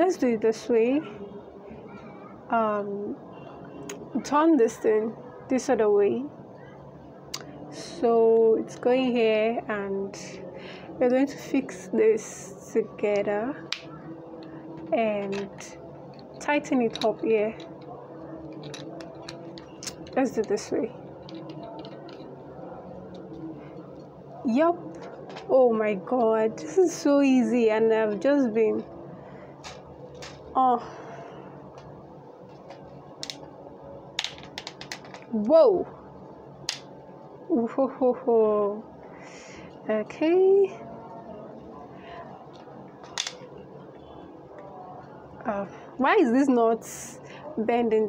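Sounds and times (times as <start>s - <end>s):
faint handling noise: 13.2s - 24.2s.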